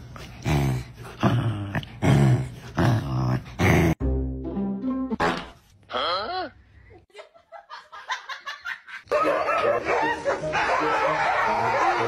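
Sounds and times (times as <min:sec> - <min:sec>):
background music: 0:04.0 - 0:05.5, 0:09.2 - 0:12.0.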